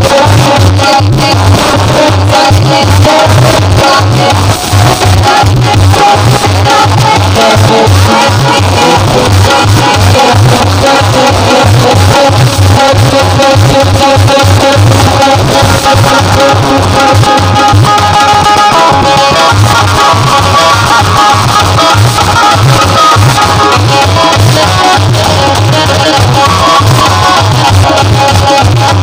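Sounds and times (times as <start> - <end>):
rhythmic drum beat: 0.0 - 29.0.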